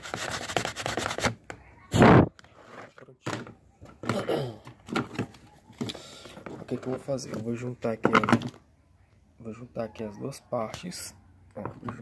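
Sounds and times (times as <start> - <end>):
faint handling noises: 2.4 - 9.3.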